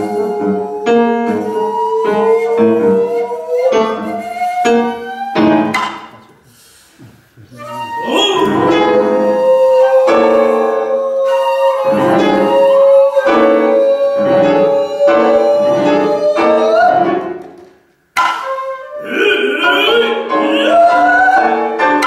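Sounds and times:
bamboo flute long note: 0.0s - 5.8s, 7.5s - 17.4s, 18.3s - 21.8s.

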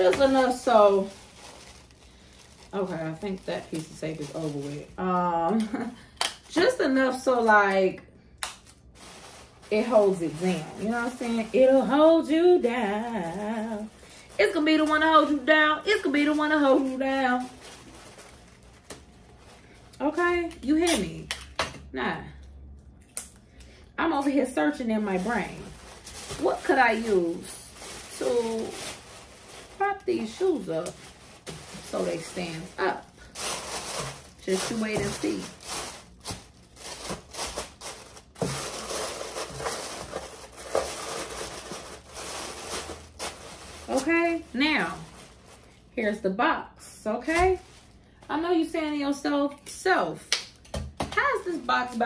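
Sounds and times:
paper crinkling and rustling: 0.0s - 5.0s, 8.6s - 20.0s, 25.1s - 45.8s.

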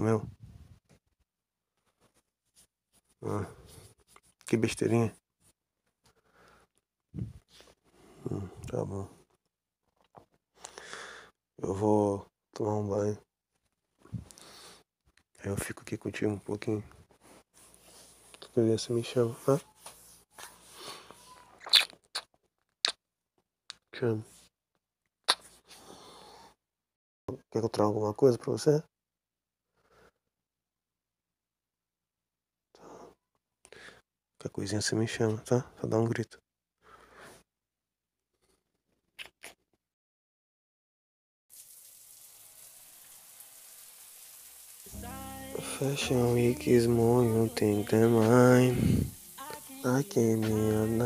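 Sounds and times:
crisp lip clicks: 21.6s - 23.0s, 39.2s - 39.6s
shower spraying: 41.5s - 51.0s
song with singing voice: 44.9s - 51.0s
soft breathy rustle: 48.6s - 49.8s.

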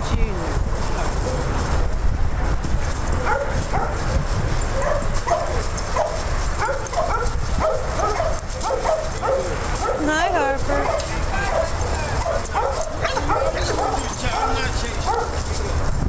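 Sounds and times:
steady low rumble: 0.0s - 16.0s
dogs yipping and play-barking: 1.0s - 2.0s, 2.8s - 15.8s.

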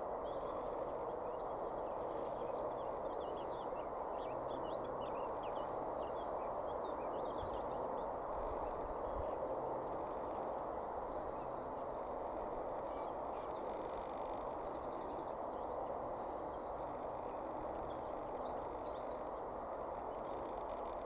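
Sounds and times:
songbirds chirping and trilling: 0.0s - 21.0s.

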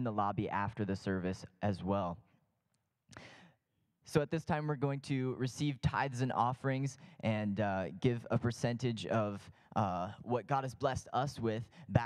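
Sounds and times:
man speaking: 0.0s - 2.3s, 4.0s - 12.0s
breath into microphone: 3.1s - 3.6s, 7.0s - 7.2s, 9.5s - 9.8s, 11.6s - 12.0s.

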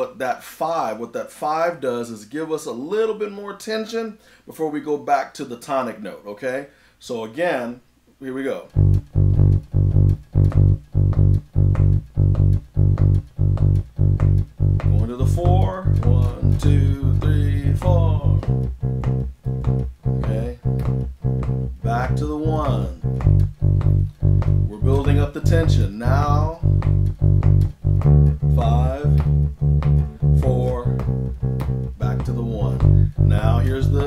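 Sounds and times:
bass guitar blues shuffle: 8.7s - 34.0s.

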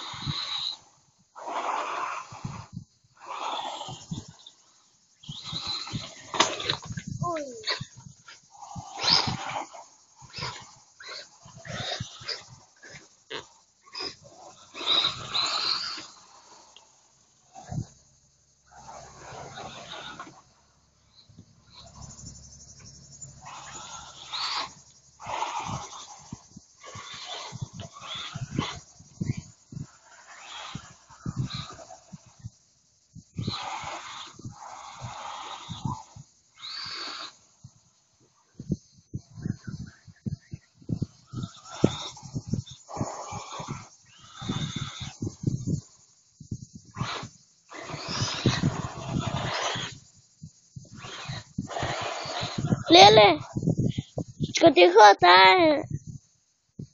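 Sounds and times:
rc car motors bursting: 0.0s - 18.0s, 18.6s - 20.5s, 21.1s - 32.6s, 33.2s - 37.6s, 46.9s - 54.0s
tyres skidding on loose dirt: 0.0s - 32.4s, 33.3s - 37.6s, 47.0s - 50.2s, 50.9s - 53.6s.

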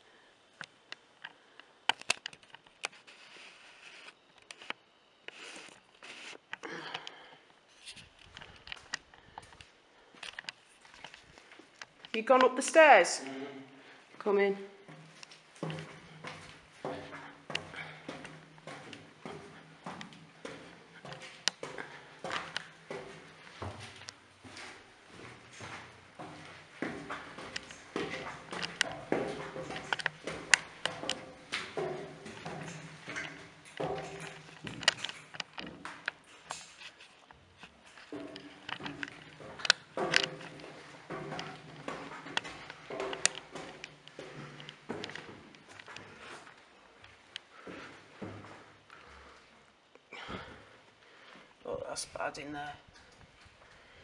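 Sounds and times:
footsteps on metal stairs: 14.8s - 49.4s.

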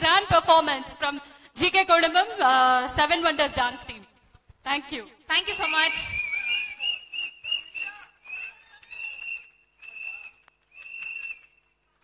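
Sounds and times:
high-pitched whistling: 5.6s - 11.7s.

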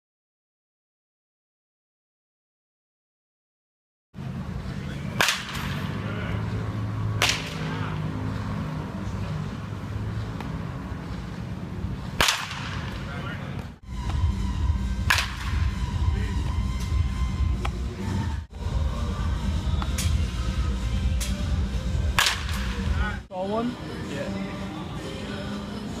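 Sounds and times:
steady low hum: 4.2s - 26.0s
baseball bat hitting balls: 4.8s - 14.2s, 14.9s - 18.3s, 19.6s - 23.0s.

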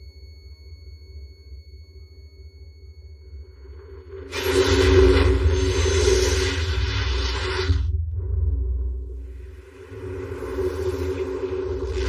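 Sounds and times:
low rumbling drone: 2.6s - 12.0s.

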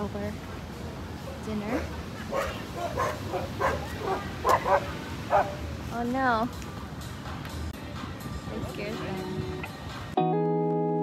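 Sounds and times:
dog barking: 1.8s - 5.6s.

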